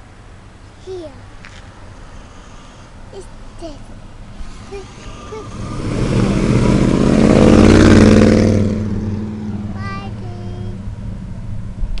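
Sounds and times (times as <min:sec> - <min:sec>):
car engine accelerating past: 0:04.3 - 0:09.8.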